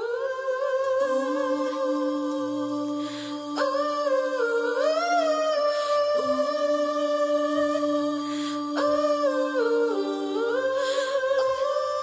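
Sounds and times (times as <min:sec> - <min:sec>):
a cappella voices humming: 0:00.0 - 0:12.0.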